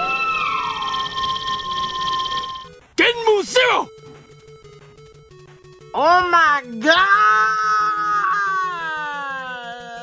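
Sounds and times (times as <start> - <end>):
electronic charging tone: 0.0 - 2.8.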